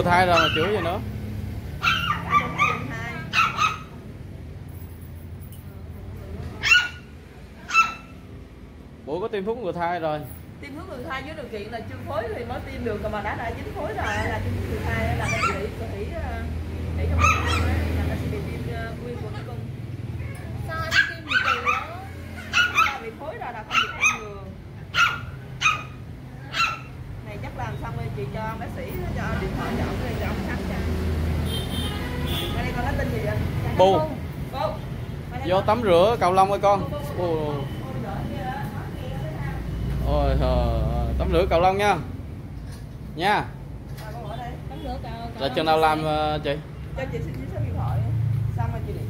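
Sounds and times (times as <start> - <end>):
small dog yipping and barking: 0.3 - 1.0, 1.8 - 4.0, 6.6 - 8.2, 14.0 - 14.4, 15.2 - 15.8, 17.1 - 17.8, 20.2 - 27.0.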